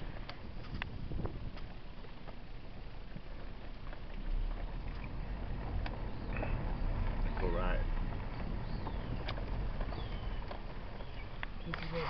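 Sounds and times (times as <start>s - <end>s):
tyres rumbling over gravel: 0.0s - 12.0s.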